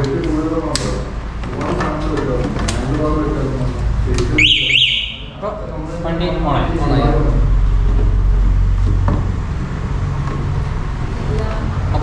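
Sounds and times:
people talking: 0.0s - 8.0s, 11.2s - 12.0s
electronic alarm siren chirps: 4.4s - 5.4s.

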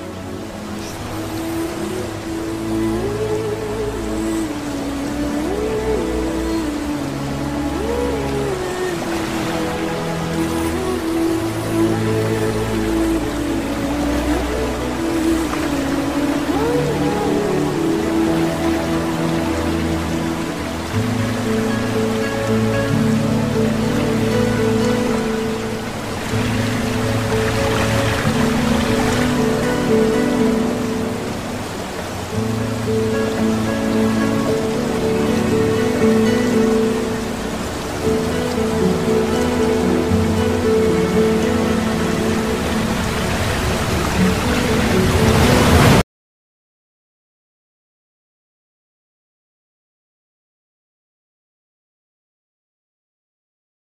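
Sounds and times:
hiss-like wash: 0.0s - 46.0s
slow sustained chords music: 0.0s - 46.0s.

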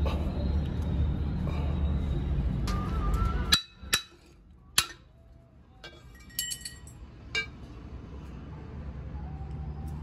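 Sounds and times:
steel parts clinking on concrete: 3.5s - 5.2s, 5.8s - 7.6s.

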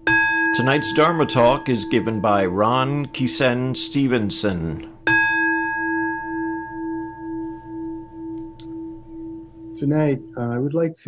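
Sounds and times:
singing bowl ringing: 0.0s - 10.3s.

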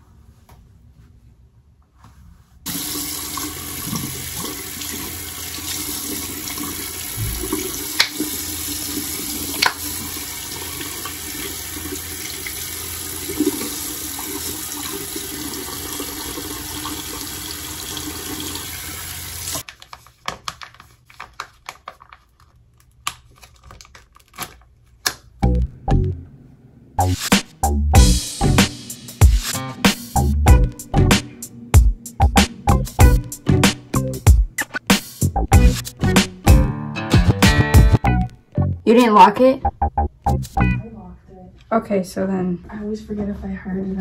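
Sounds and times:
sink tap running: 2.7s - 19.6s.

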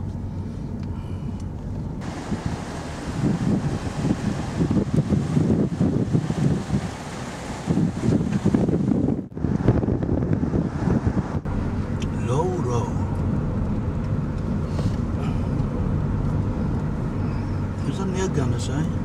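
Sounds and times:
wind buffeting microphone: 2.0s - 12.0s.

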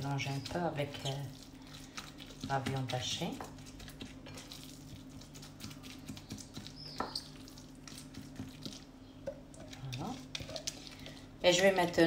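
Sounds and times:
hand mixing wet minced meat: 0.0s - 12.0s.

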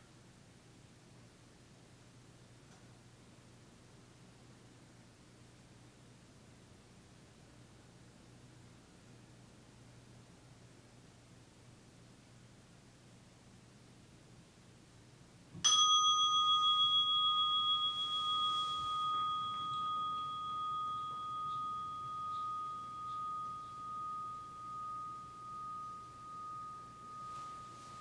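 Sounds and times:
meditation bell ringing: 15.6s - 28.0s.

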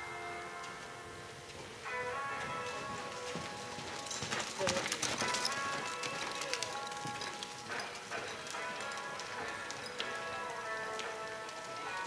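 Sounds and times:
background music: 0.0s - 12.0s
horse hooves on dirt: 1.5s - 12.0s.

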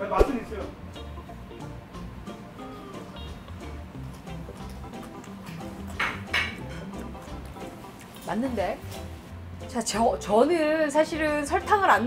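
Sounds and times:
person chewing crunchy food: 3.9s - 8.2s.

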